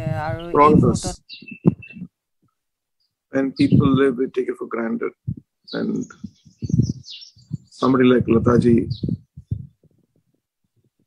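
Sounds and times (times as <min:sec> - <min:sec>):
man speaking: 0:00.0 - 0:01.2, 0:03.3 - 0:06.3, 0:07.7 - 0:09.1
soft low thumps: 0:00.0 - 0:02.2, 0:03.6 - 0:04.2, 0:05.1 - 0:11.0.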